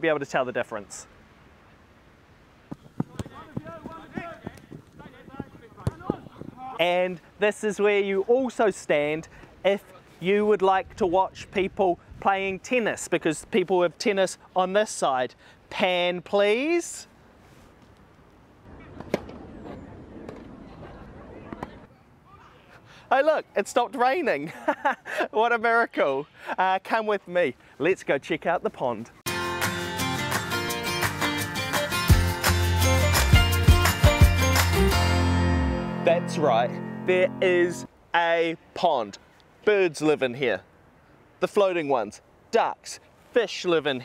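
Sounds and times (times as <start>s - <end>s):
sharp knocks or pops: 2.7s - 6.2s
ball being kicked: 2.7s - 6.6s
running footsteps: 2.7s - 6.6s.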